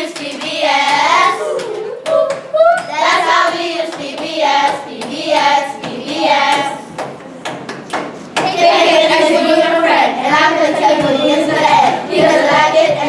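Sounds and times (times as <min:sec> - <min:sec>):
children singing in unison: 0:00.0 - 0:06.9, 0:08.4 - 0:13.0
hand claps: 0:00.0 - 0:08.7.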